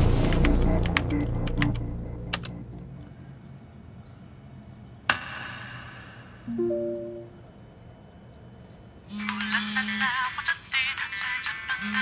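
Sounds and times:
music: 0.0 - 3.0, 6.5 - 7.3.

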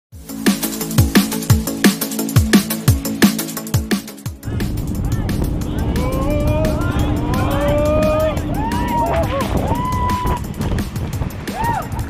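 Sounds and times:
music with a beat: 0.1 - 12.0
jet boat engine and water rushing: 0.8 - 12.0.

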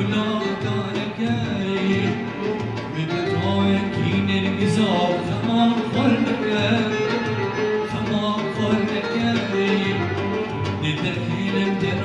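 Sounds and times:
man singing: 0.0 - 12.0
plucked long-necked lute: 0.0 - 12.0
violin: 0.0 - 12.0.

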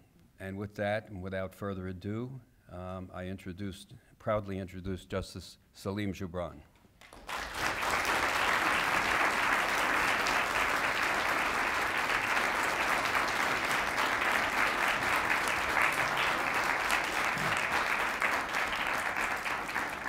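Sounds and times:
audience applauding: 7.0 - 20.0.

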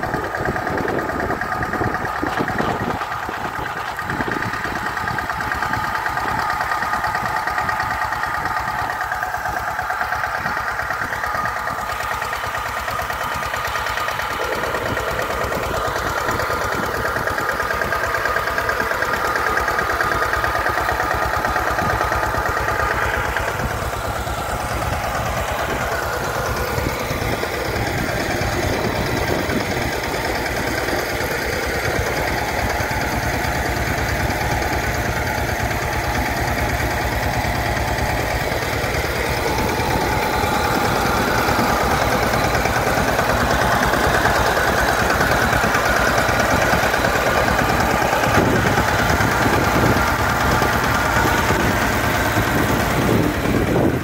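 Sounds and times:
tractor engine running: 0.0 - 54.0.

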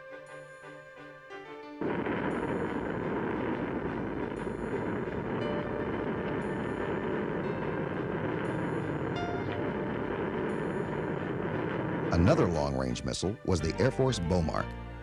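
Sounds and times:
rocket boosters rushing: 1.8 - 13.2.

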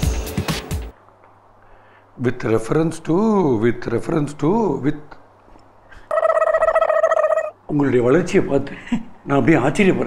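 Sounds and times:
fast-trilling electronic ringing tone: 6.1 - 7.5.

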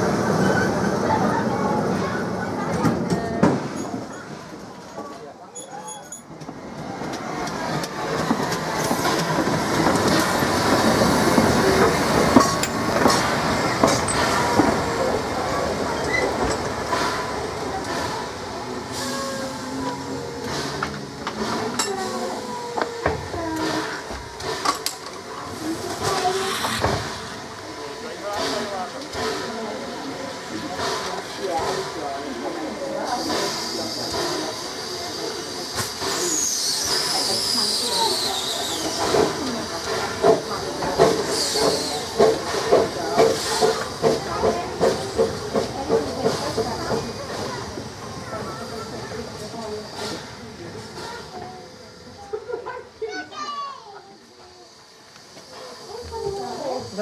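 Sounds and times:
train wheels on rails: 0.0 - 57.0
steam locomotive passing slowly: 6.2 - 57.0.

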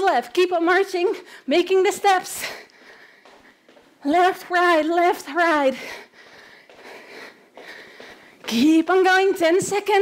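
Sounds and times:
woman breathing: 1.1 - 1.6, 2.4 - 4.0, 5.5 - 8.6.

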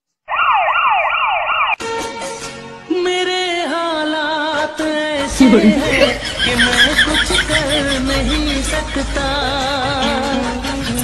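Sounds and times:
siren yelping: 0.3 - 1.8.

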